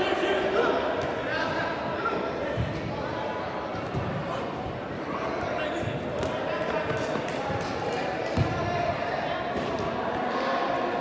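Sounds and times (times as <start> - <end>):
players' voices echoing: 0.0 - 11.0
soccer ball kick thuds: 2.5 - 3.0, 3.7 - 4.4, 5.4 - 8.7.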